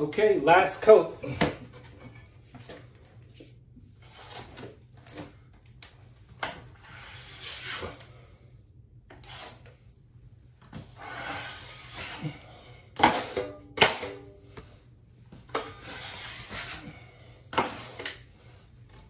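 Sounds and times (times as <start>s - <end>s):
drywall knife scraping: 4.0s - 4.8s, 6.8s - 8.3s, 9.1s - 9.8s, 10.9s - 12.4s, 13.0s - 14.2s, 15.5s - 18.5s.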